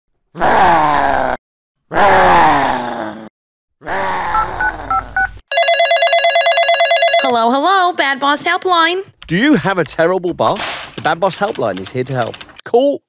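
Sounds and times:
wordless vocal groans: 0:00.4 - 0:05.1
telephone ringing: 0:04.6 - 0:07.6.

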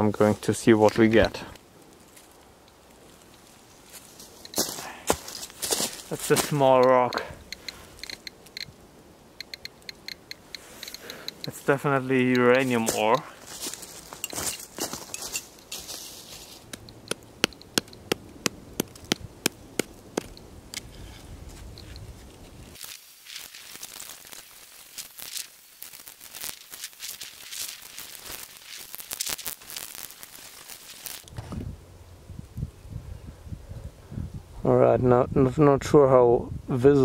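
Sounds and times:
hammer striking rock: 0:16.7 - 0:20.4.

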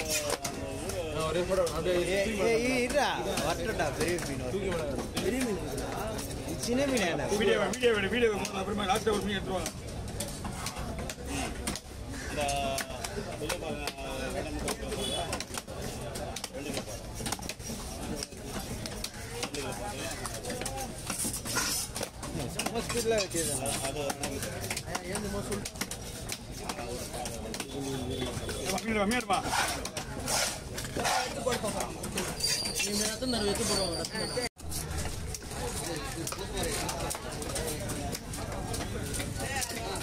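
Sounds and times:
voice: 0:00.0 - 0:40.0.

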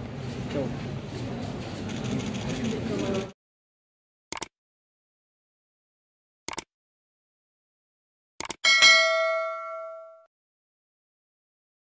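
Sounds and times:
quick clicks: 0:04.3 - 0:04.5, 0:06.5 - 0:06.7, 0:08.4 - 0:08.6
bright bell ding: 0:08.6 - 0:10.3.

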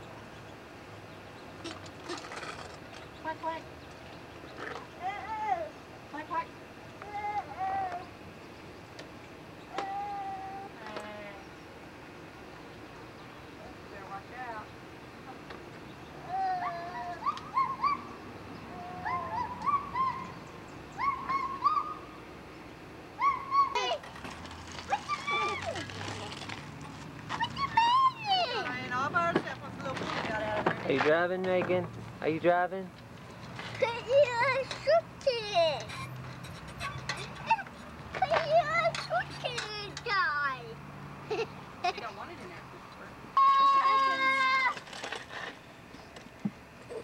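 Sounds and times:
child's high-pitched cry: 0:07.0 - 0:08.1, 0:09.7 - 0:10.8, 0:16.2 - 0:18.0, 0:18.7 - 0:20.3, 0:23.2 - 0:24.0, 0:24.9 - 0:25.8, 0:43.4 - 0:44.8.

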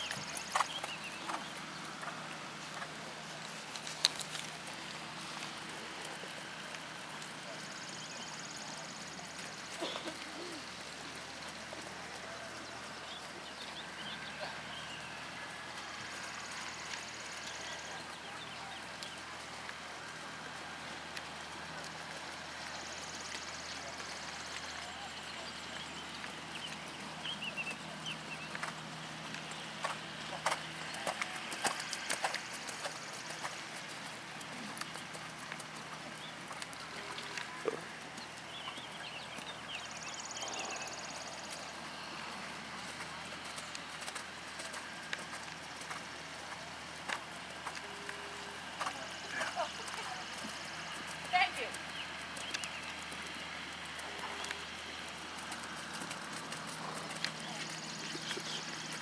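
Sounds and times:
horse hoofbeats on sand: 0:00.0 - 0:59.0
outdoor background noise: 0:00.0 - 0:59.0.

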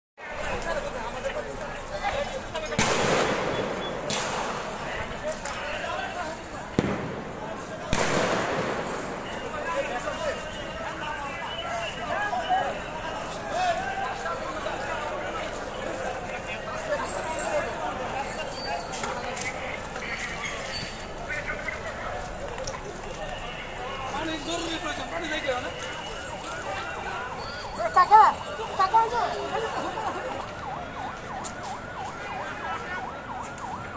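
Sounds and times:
street crowd noise: 0:00.0 - 0:33.9
sharp bangs with echo: 0:02.8 - 0:04.8, 0:06.7 - 0:09.3
siren wailing: 0:26.0 - 0:33.9.

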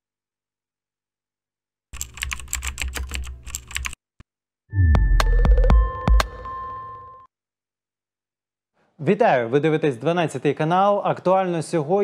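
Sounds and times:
computer keyboard key clicks: 0:02.0 - 0:04.0.

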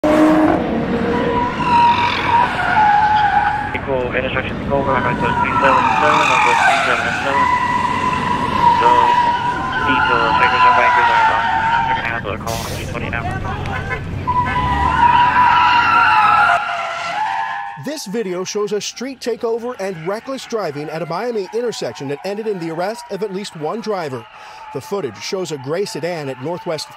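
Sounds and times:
car tyres squealing: 0:00.0 - 0:26.9.

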